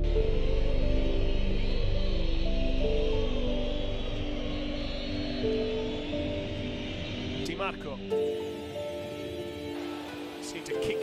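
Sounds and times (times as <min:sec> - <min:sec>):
slow background music: 0:00.0 - 0:11.0.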